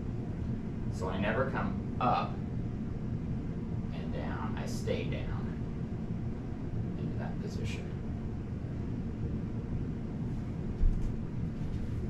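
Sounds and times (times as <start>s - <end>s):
low rumble of room noise: 0.0s - 12.0s.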